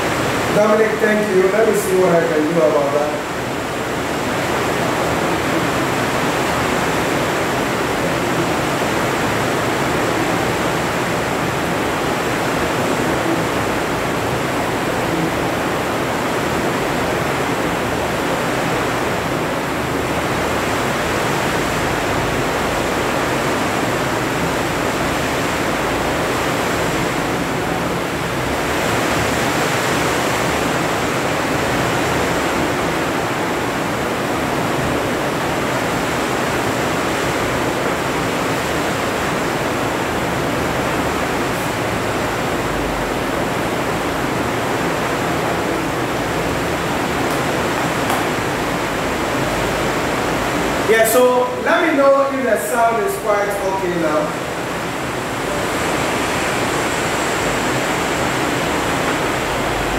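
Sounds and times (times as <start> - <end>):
electronic noise hiss: 44.8 - 59.9.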